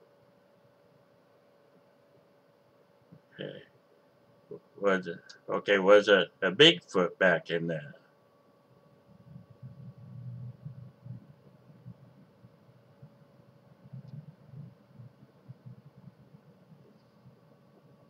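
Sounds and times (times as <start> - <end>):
faint steady hum: 0.0 - 18.0
soft low rumble: 8.3 - 18.0.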